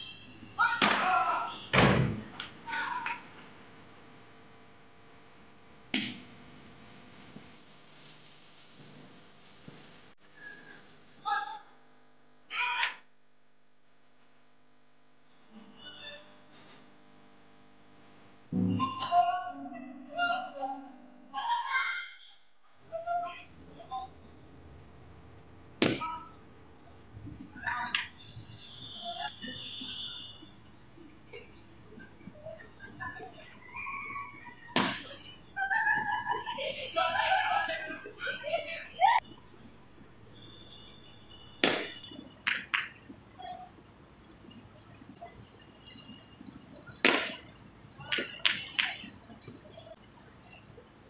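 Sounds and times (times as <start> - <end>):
ball striking cricket bat: 0.8 - 1.2, 25.8 - 26.0, 41.6 - 43.0, 47.0 - 47.5
sharp cracks or claps: 41.6 - 42.9, 47.0 - 47.5.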